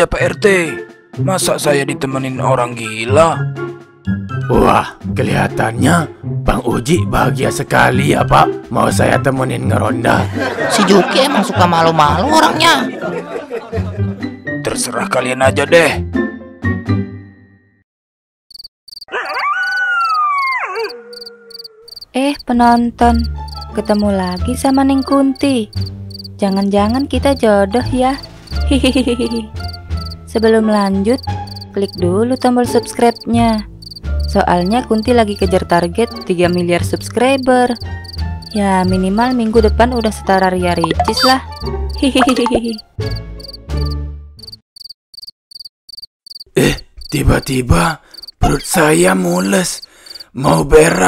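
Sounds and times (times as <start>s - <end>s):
crickets chirping: 18.5s - 19.1s, 21.1s - 22.5s, 23.1s - 27.4s, 28.2s - 28.7s, 29.6s - 32.0s, 33.1s - 35.5s, 37.4s - 38.6s, 41.1s - 42.0s, 43.4s - 47.3s, 48.0s - 48.4s, 49.5s - 50.3s
dog howling: 19.1s - 21.9s.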